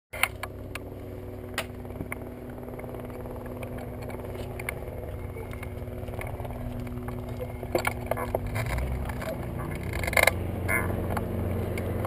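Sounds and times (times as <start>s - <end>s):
small aircraft engine idling: 0.2s - 12.0s.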